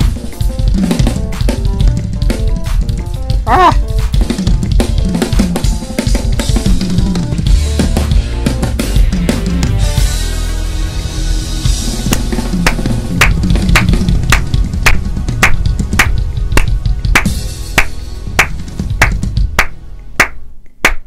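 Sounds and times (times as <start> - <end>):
drum kit playing groove: 0.0 - 20.3.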